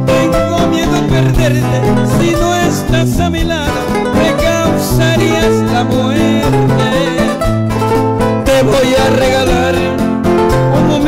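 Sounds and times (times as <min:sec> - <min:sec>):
acoustic guitars playing: 0:00.0 - 0:11.0.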